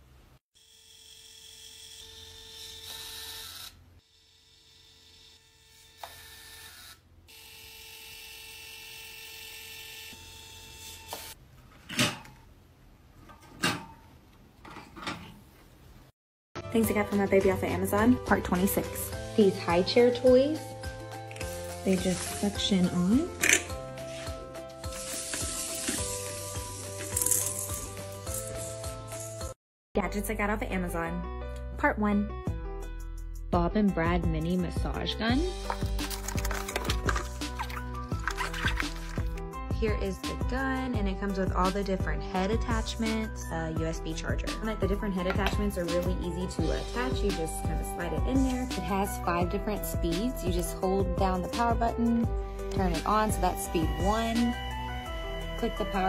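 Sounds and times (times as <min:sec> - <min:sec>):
background music with held notes: 0:16.6 - 0:56.0.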